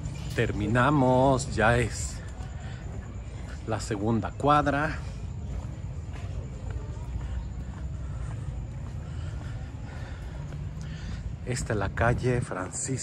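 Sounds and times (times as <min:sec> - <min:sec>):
faint distant traffic: 0:00.0 - 0:13.0
steady low rumble: 0:00.0 - 0:13.0.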